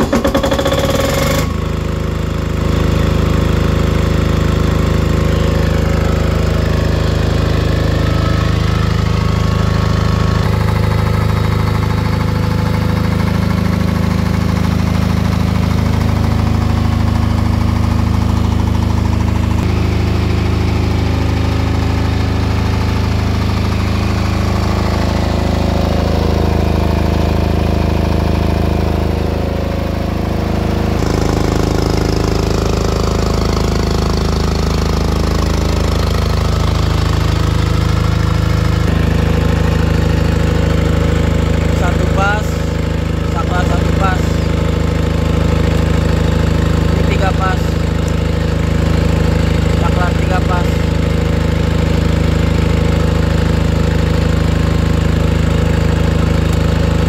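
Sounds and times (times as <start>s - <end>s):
diesel generator starting and running: 0.0s - 57.0s.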